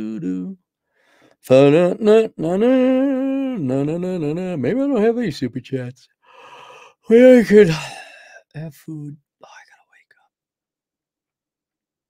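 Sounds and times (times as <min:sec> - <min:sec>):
man speaking: 0:07.1 - 0:09.6
man whispering: 0:07.7 - 0:10.2.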